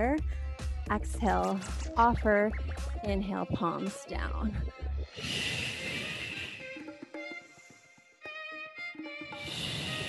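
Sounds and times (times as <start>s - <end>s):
background music: 0.0s - 10.0s
woman exhaling into microphone: 5.2s - 6.8s, 9.4s - 10.0s.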